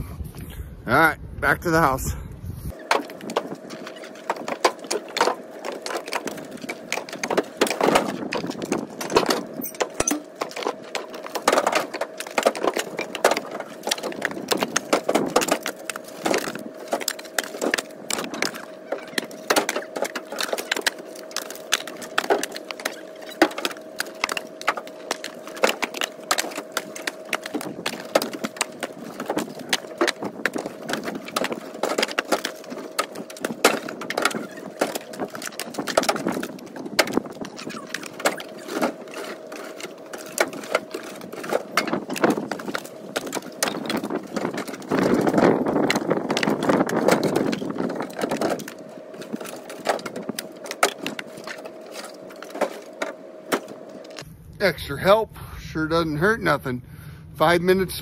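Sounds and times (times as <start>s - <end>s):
faint steady hum: 0.0s - 58.0s
logs clattering onto pile: 2.7s - 54.2s.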